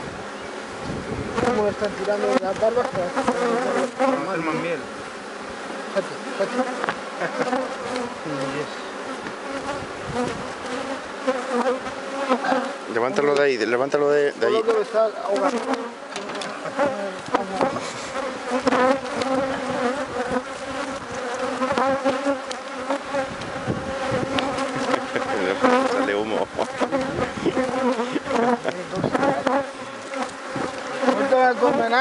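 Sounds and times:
bees buzzing: 0:00.0 - 0:32.0
wooden hive frames knocking: 0:06.5 - 0:08.5, 0:14.6 - 0:32.0.

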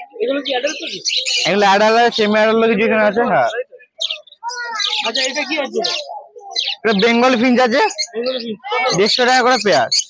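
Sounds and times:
murmured voices: 0:00.0 - 0:10.0
pet birds chirping: 0:00.0 - 0:10.0.

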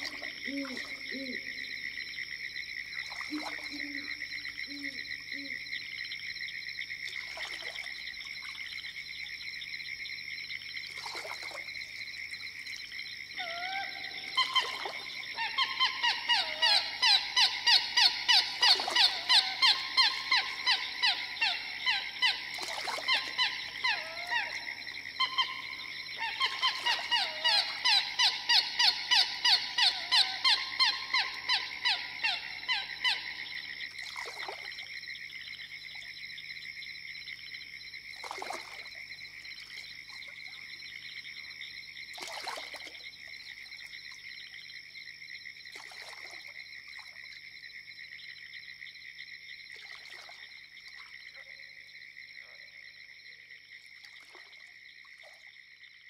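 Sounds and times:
chorus of frogs and insects: 0:00.0 - 0:56.0.

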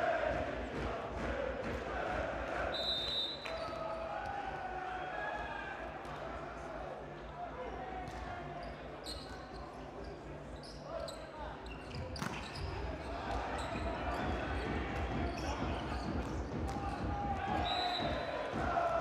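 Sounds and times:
arena crowd noise: 0:00.0 - 0:19.0.

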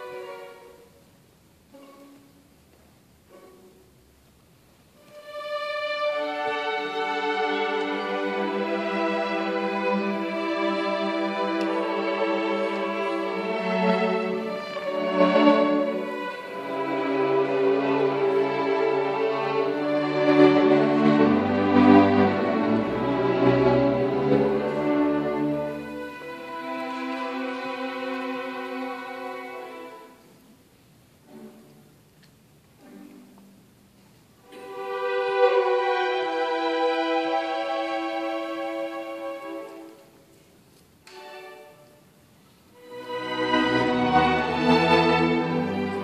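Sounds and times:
string orchestra playing held chords: 0:00.0 - 0:46.0.

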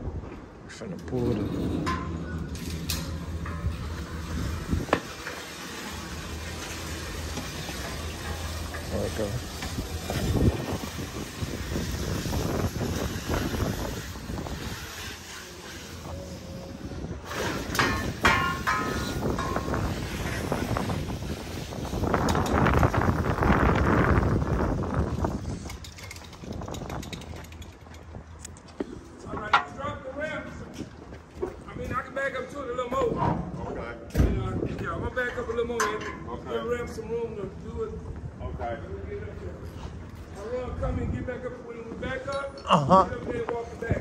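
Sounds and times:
wind on microphone: 0:01.3 - 0:05.2, 0:09.6 - 0:15.2, 0:15.9 - 0:30.0
indistinct voices: 0:15.3 - 0:17.3.

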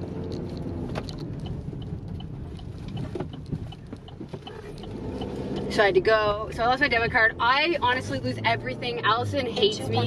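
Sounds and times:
car road and engine rumble: 0:00.0 - 0:10.0
turn signal ticking: 0:00.0 - 0:10.0.

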